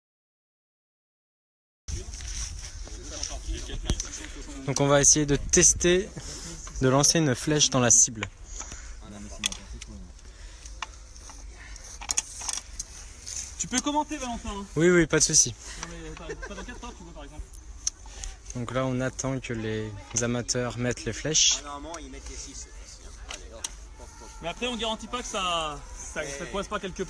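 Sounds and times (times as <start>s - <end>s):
faint voices: 1.9s - 27.0s
wooden clicks of arrows loading: 8.1s - 14.2s, 21.8s - 24.2s.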